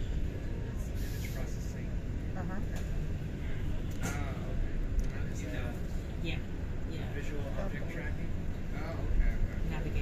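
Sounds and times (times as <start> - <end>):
bus rumbling in motion: 0.0 - 10.0
indistinct passenger voices: 0.0 - 10.0.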